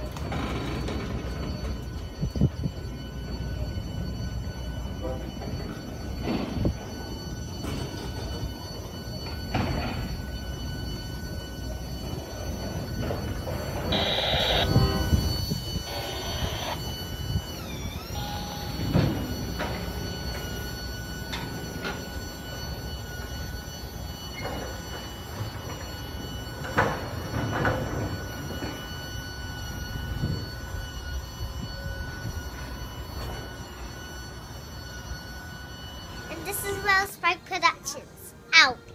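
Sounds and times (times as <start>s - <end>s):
high wheel squeal: 12.1s - 19.7s.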